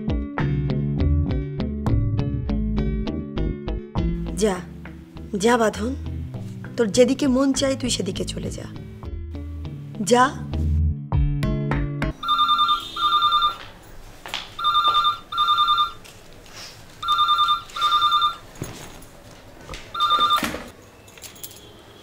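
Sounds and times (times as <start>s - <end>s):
background music: 0.0s - 13.0s
telephone ringing: 12.2s - 13.8s, 14.6s - 16.0s, 17.0s - 18.5s, 19.9s - 20.8s.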